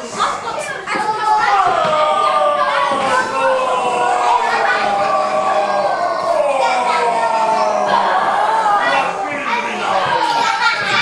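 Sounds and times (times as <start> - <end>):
children shouting and squealing: 0.0 - 11.0.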